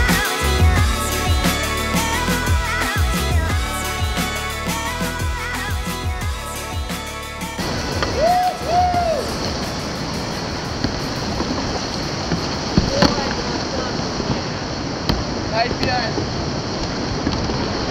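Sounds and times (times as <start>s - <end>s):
background music: 0.0s - 14.0s
whitewater rapids rushing: 0.0s - 17.9s
people shouting: 7.8s - 9.6s.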